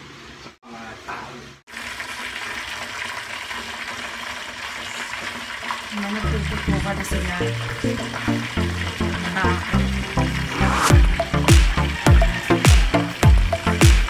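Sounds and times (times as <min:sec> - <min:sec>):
water boiling in a pot: 0:00.7 - 0:13.8
music with heavy bass: 0:06.8 - 0:14.0.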